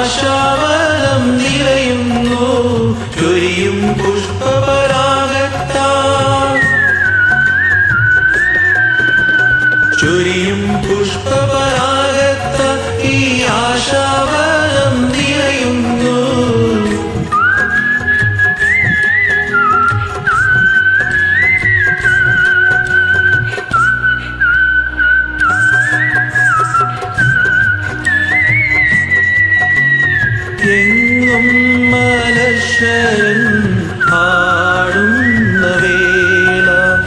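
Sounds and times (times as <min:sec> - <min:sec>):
backing music: 0:00.0 - 0:37.0
person whistling melody: 0:06.2 - 0:11.4, 0:16.8 - 0:37.0.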